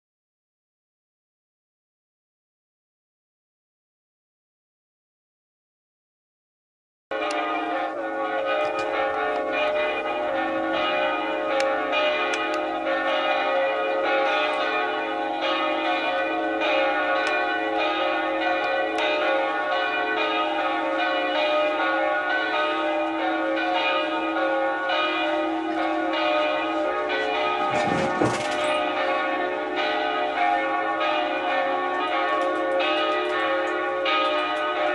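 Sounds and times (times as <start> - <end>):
church bells pealing: 7.1 - 34.9.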